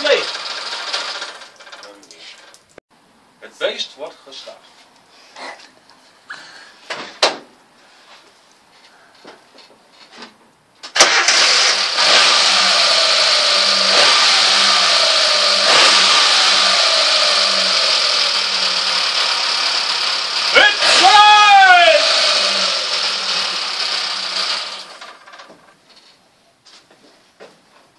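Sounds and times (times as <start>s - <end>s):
car engine starting and revving: 0.0s - 1.5s, 11.0s - 25.3s.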